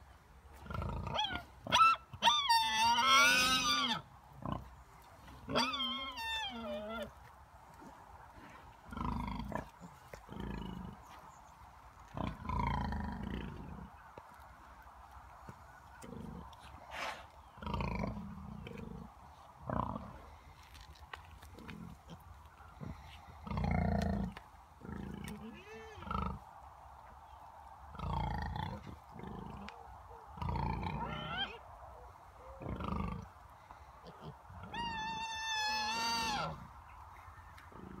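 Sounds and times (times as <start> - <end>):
pigs grunting: 7.8 - 11.1, 12.1 - 13.9, 16.0 - 20.4, 21.4 - 26.4, 27.9 - 31.6, 32.4 - 33.3, 37.7 - 38.0.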